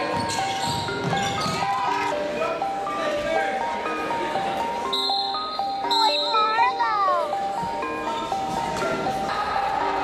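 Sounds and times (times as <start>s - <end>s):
synth melody over a beat: 0.0s - 10.0s.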